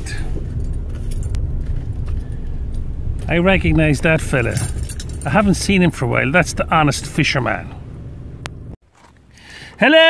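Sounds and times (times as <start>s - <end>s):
car cabin rumble: 0.0s - 9.1s.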